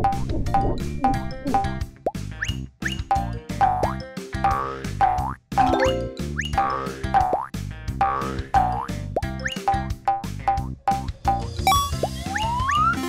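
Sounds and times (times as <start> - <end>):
bouncy cartoon music: 0.0 - 13.0.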